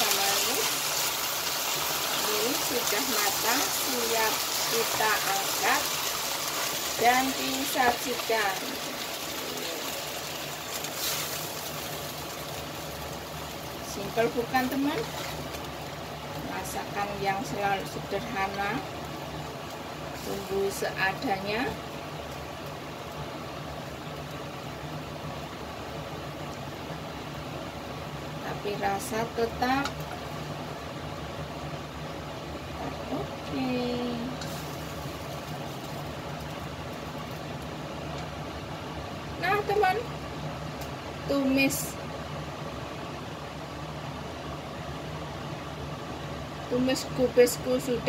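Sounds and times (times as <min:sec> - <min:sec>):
fan humming and hissing: 0:00.0 - 0:48.0.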